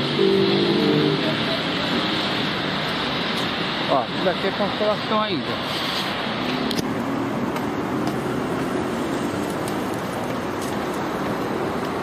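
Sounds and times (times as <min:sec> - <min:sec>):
street traffic noise: 0:00.0 - 0:12.0.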